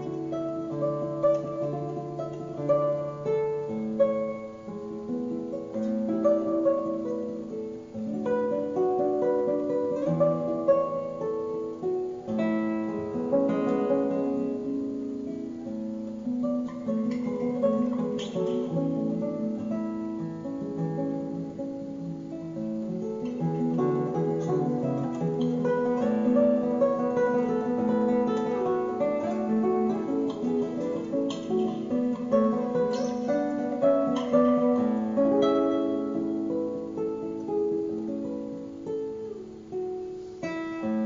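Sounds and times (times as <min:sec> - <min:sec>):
fingerstyle classical guitar: 0:00.0 - 0:41.0.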